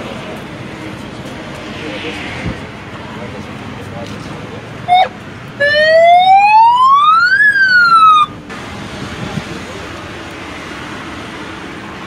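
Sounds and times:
steady background noise: 0.0 - 12.0
electronic siren wailing: 4.9 - 8.4.

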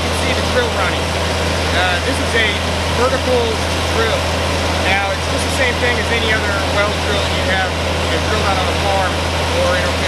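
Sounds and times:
drilling rig engine droning: 0.0 - 10.0.

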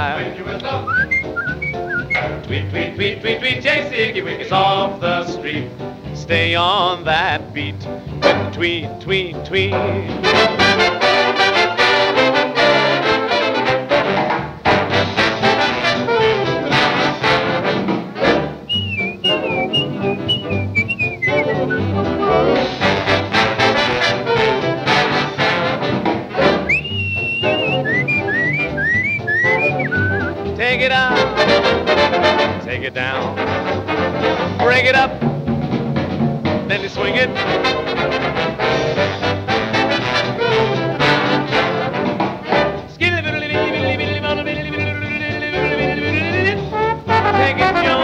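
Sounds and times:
swing band playing: 0.0 - 48.0
high warbling bird-like line: 0.8 - 2.3, 18.7 - 21.8, 26.7 - 30.3.

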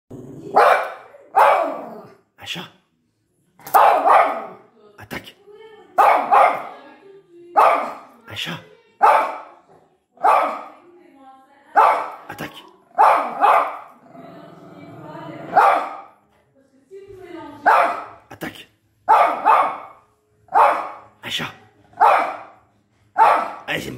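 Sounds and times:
dog growling: 0.1 - 0.7, 1.6 - 2.2, 12.9 - 15.8
small dog barking: 0.5 - 2.1, 3.7 - 4.6, 6.0 - 6.7, 7.6 - 8.0, 9.0 - 9.5, 10.2 - 10.7, 11.8 - 12.3, 12.9 - 13.9, 15.5 - 16.1, 17.6 - 18.1, 19.1 - 21.0, 22.0 - 22.6, 23.2 - 23.7.

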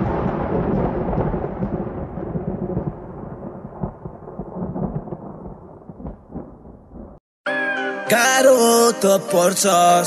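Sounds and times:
low thunder-like noise: 0.0 - 7.2.

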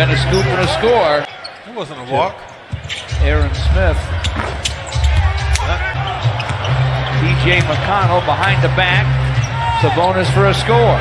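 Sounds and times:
broadcast commentary: 0.0 - 6.3
bass-heavy music: 3.1 - 9.4.

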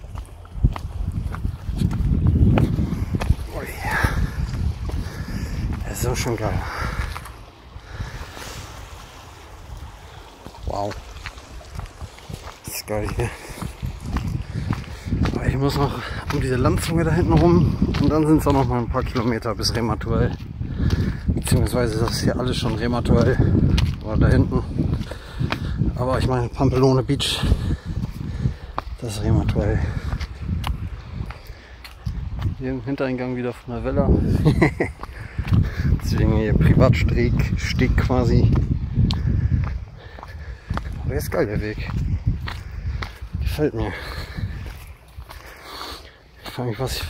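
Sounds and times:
water lapping against rocks: 0.0 - 32.6
footsteps on stone path: 0.0 - 47.0
wind buffeting microphone: 0.0 - 47.0.

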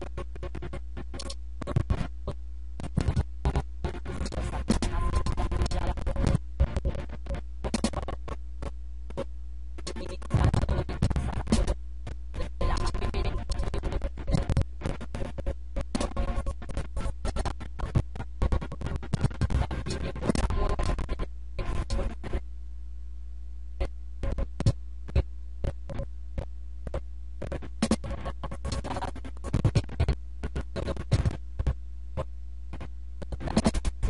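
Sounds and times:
record scratching: 0.0 - 22.4, 24.2 - 26.1, 26.9 - 34.0
steady low hum: 0.0 - 34.0.

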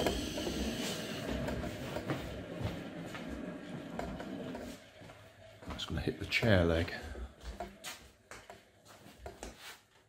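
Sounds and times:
toy car rolling on hard floor: 0.0 - 5.0.

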